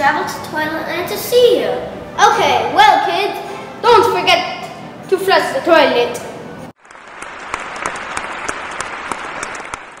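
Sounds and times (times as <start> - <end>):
audience applause: 6.8 - 10.0.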